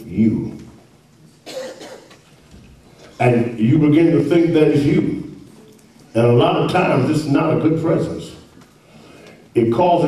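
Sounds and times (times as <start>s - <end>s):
person coughing: 1.4s - 2.2s.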